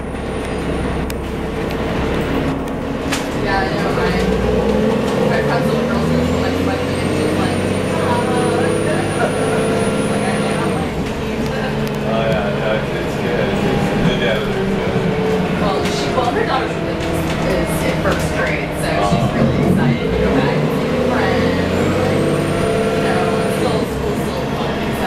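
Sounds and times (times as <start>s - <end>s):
bus engine rumbling: 0.0s - 25.0s.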